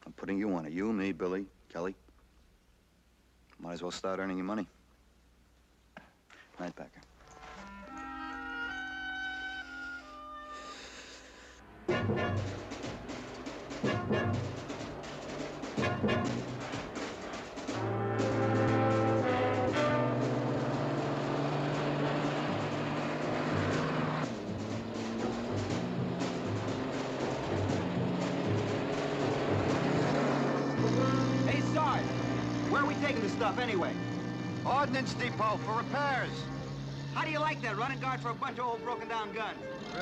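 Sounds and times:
orchestral brass and timpani score: 11.8s - 21.6s.

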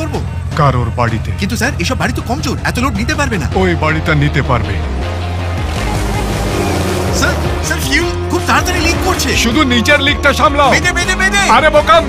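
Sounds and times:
dramatic music: 0.0s - 12.0s
aircraft engine rushing: 4.8s - 9.5s.

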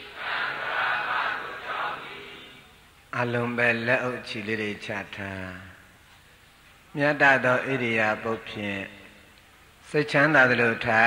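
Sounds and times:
group chanting: 0.0s - 2.7s.

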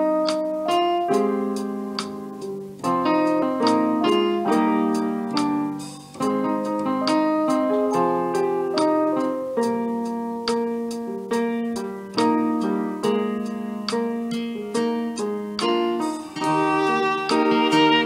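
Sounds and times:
keyboard playing slow chords: 0.0s - 18.0s.

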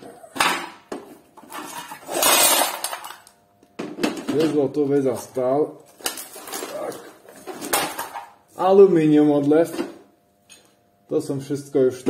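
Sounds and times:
scrap metal parts clattering: 1.4s - 3.2s, 6.2s - 8.3s.

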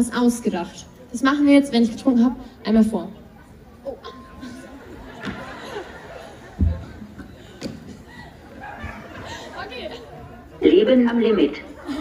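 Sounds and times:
voices chattering low: 0.0s - 12.0s.

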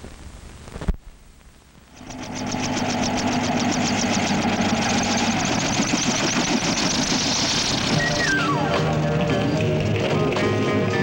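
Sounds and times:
low hiss: 0.0s - 2.0s
machine hum: 0.0s - 11.0s
machine clattering: 2.0s - 11.0s.

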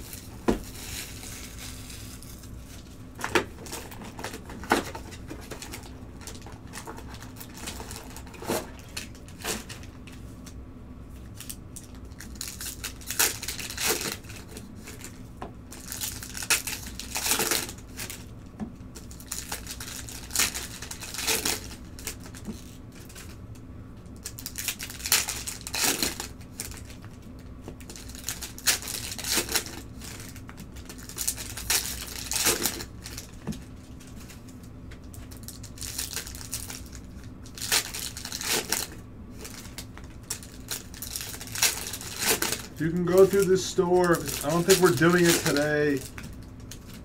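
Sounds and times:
foil pack crinkling torn open: 0.0s - 10.6s, 11.2s - 18.4s, 19.0s - 23.4s, 24.0s - 47.0s.

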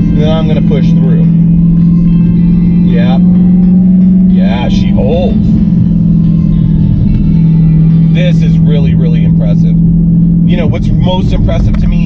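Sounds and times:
car engine droning: 0.0s - 12.0s.

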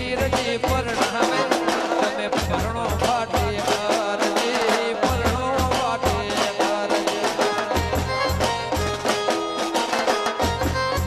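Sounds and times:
man singing: 0.0s - 8.3s
dhol drums beaten with sticks: 0.0s - 11.0s.

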